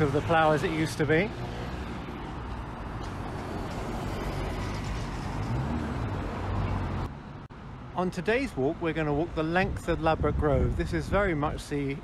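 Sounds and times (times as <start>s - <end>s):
road traffic engines: 0.0s - 12.0s
tyre and road noise: 0.0s - 12.0s.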